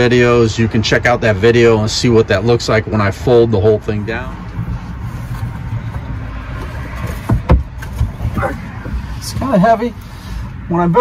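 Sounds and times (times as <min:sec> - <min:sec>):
sharp wooden knocks: 0:06.9 - 0:09.0.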